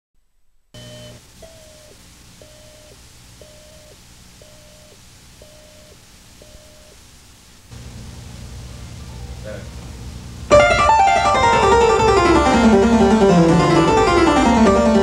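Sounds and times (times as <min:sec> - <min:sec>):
tape hiss: 0:00.2 - 0:15.0
electronic beep tone: 0:00.8 - 0:07.0.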